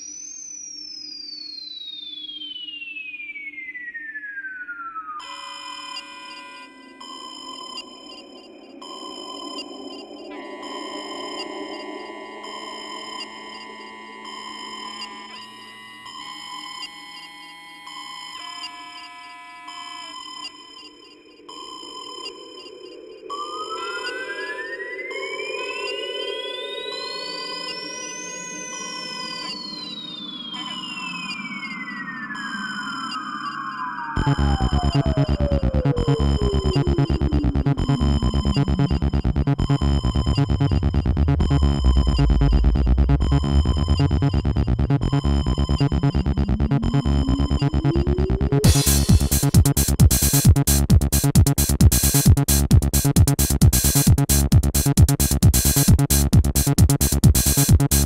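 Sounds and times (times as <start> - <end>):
synthesizer tone gliding in pitch: 1.2 - 50.7
held synth notes: 6.7 - 18.0, 22.4 - 50.6
hissy synth pad: 7.9 - 16.0.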